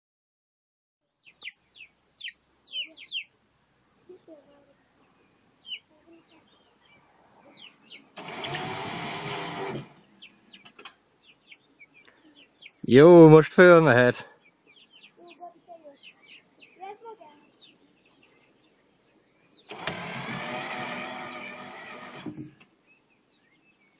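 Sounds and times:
small birds chirping: 0:01.0 - 0:12.9, 0:13.6 - 0:23.9
chicks peeping: 0:01.2 - 0:03.4, 0:04.1 - 0:08.6, 0:09.8 - 0:12.9, 0:14.3 - 0:19.7
loud voice or call: 0:12.9 - 0:14.2.

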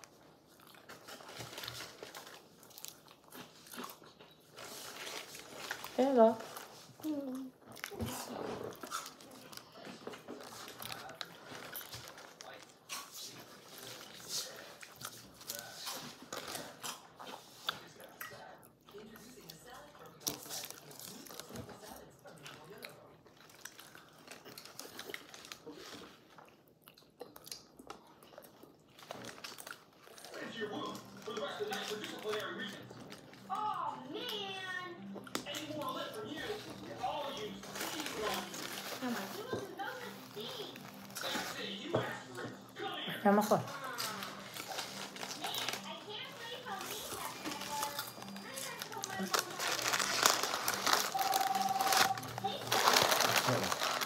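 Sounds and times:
paper wrapper rustling: 0:00.8 - 0:03.6, 0:04.5 - 0:07.3, 0:07.9 - 0:16.8, 0:35.7 - 0:41.8, 0:43.6 - 0:54.0.

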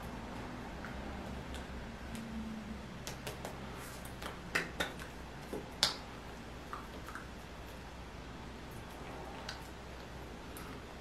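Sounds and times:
faint low hum: 0:00.0 - 0:11.0
hands clicking and tapping: 0:03.0 - 0:06.1.

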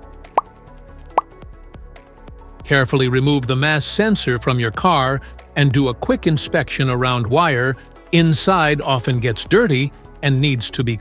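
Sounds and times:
background music with light beat: 0:00.0 - 0:11.0.

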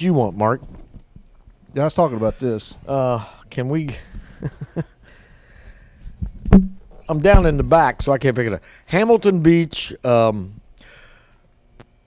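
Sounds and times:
low room noise: 0:00.0 - 0:12.0.

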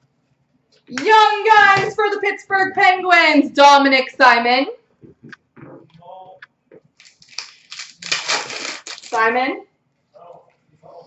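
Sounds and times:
foil wrapper crackling and tearing: 0:07.0 - 0:09.3.

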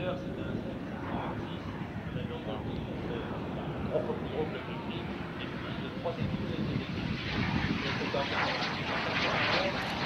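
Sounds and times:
jet aircraft flying overhead: 0:00.0 - 0:10.0.

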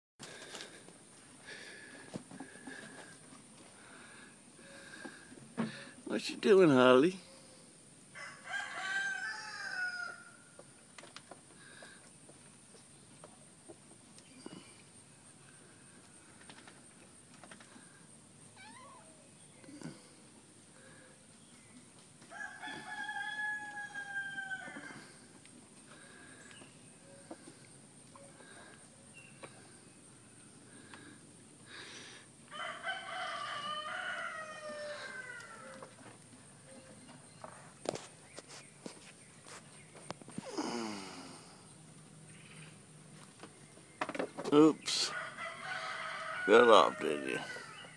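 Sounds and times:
rooster crowing: 0:08.2 - 0:10.6, 0:22.3 - 0:25.2, 0:32.5 - 0:35.9, 0:45.0 - 0:47.9
faint animal call: 0:18.5 - 0:20.2.

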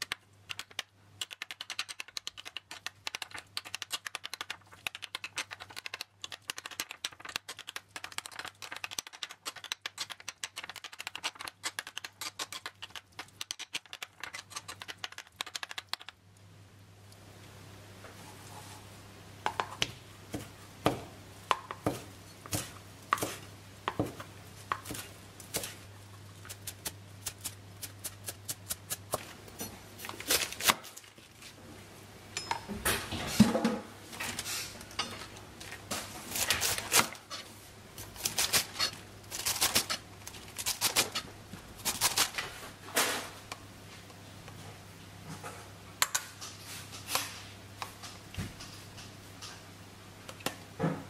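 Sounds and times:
knife chopping on plastic board: 0:19.5 - 0:25.0.

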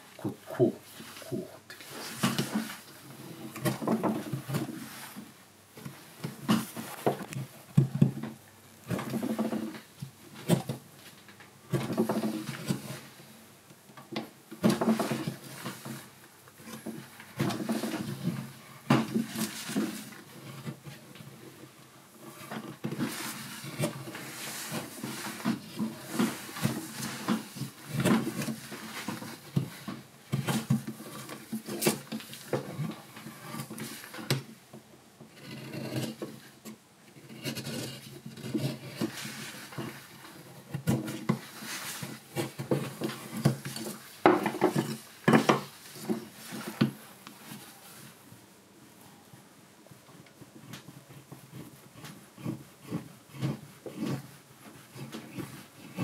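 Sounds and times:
gouge scraping wood: 0:35.3 - 0:36.5, 0:37.2 - 0:46.9, 0:50.6 - 0:56.0.

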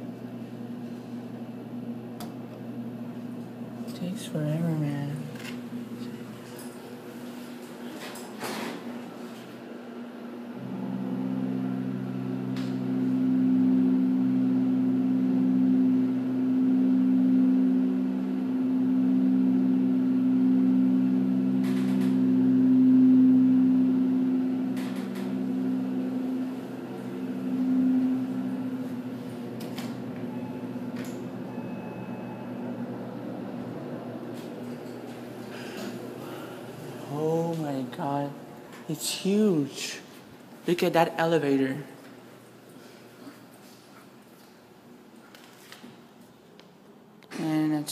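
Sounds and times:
elevator hydraulic unit humming: 0:00.0 - 0:40.6.

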